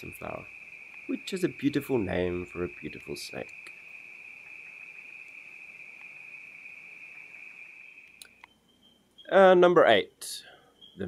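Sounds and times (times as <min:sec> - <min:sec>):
night insects chorus: 0:00.0 - 0:11.0.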